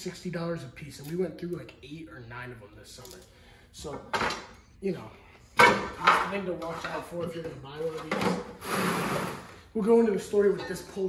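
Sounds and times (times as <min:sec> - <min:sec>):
parts rattling and scraping in bucket: 0:05.6 - 0:09.7.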